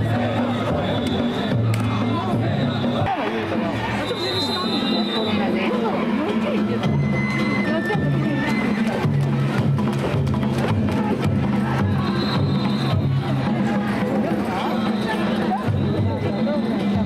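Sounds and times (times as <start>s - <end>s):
taiko drums: 0.0s - 3.6s, 6.6s - 16.4s
crowd chatter: 0.0s - 17.0s.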